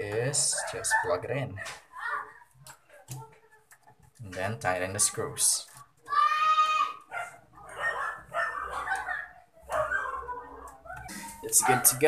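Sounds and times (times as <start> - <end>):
dog barking: 0.4 - 1.9, 7.1 - 10.8, 11.5 - 12.0.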